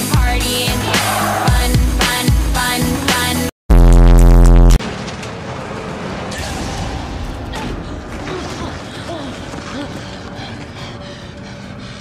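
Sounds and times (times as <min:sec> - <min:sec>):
held electronic bass note: 0:03.7 - 0:04.8.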